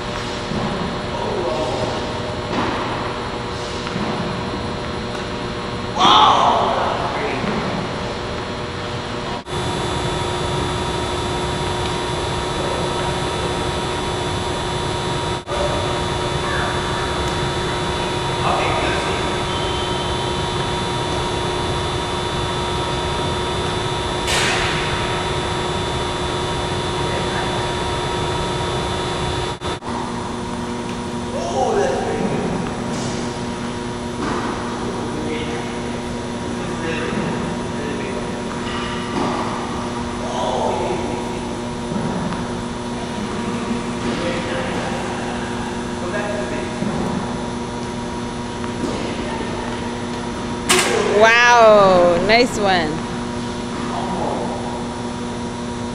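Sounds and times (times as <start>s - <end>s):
ventilation drone: 0.0s - 55.9s
voices: 51.0s - 53.1s.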